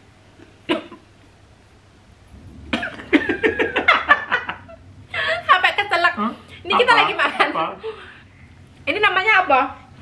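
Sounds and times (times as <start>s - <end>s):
woman coughing and laughing: 0.7s - 1.1s
people laughing: 2.8s - 5.4s.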